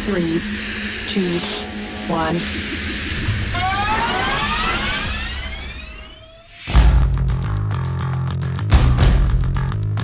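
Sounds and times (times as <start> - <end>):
steam hiss: 0.0 - 5.8
rising whine: 0.0 - 7.2.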